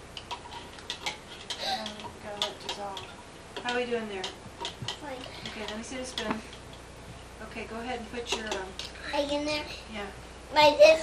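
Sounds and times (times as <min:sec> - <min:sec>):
stirrer clicking on plastic cups: 0:00.2 - 0:06.8, 0:08.2 - 0:09.0.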